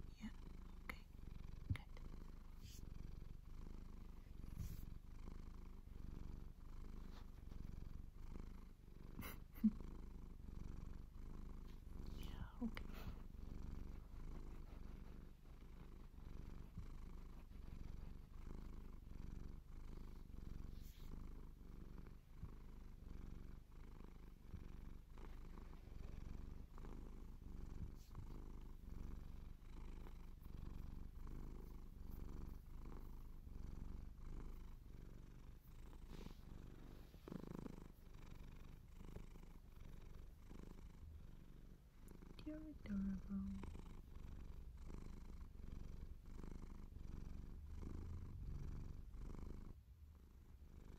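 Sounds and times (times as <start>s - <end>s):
cat purring: 0.0s - 50.9s.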